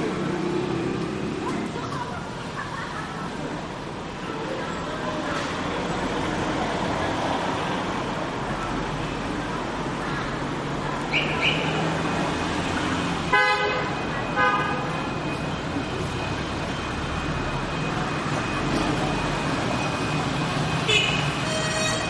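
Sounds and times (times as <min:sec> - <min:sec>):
street traffic noise: 0:00.0 - 0:22.0
vehicle horns honking: 0:13.3 - 0:14.9, 0:20.8 - 0:22.0.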